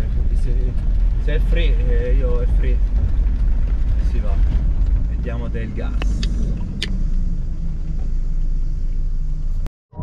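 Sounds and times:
van engine and road rumble: 0:00.0 - 0:10.0.

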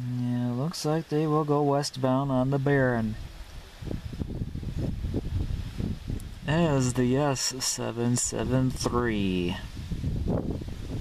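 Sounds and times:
wind buffeting microphone: 0:02.4 - 0:11.0.

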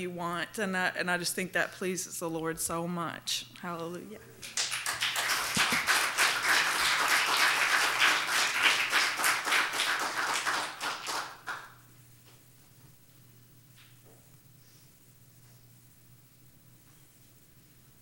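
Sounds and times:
crowd clapping: 0:04.4 - 0:11.8.

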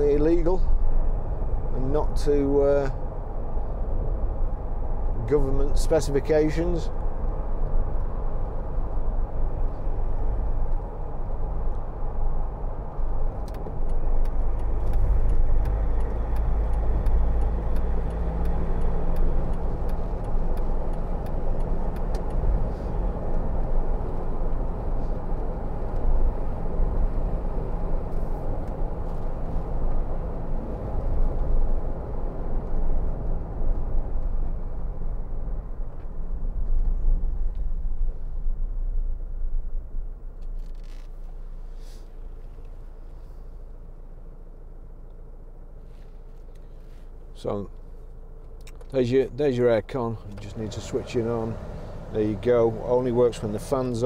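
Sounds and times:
engine rumble: 0:00.0 - 0:54.0
road noise: 0:00.0 - 0:54.0.

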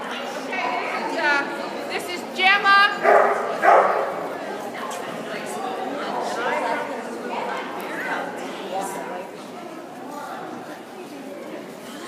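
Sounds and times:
dog barking: 0:03.0 - 0:04.2.

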